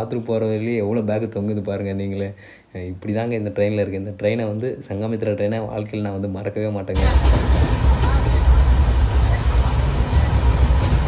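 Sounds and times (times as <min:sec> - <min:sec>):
train rumble and rushing: 0:07.0 - 0:11.0.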